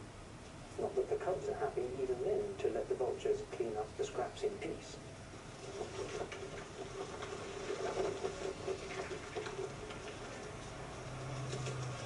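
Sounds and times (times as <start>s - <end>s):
low steady hum: 0.0s - 12.0s
vultures squabbling and flapping: 5.6s - 12.0s.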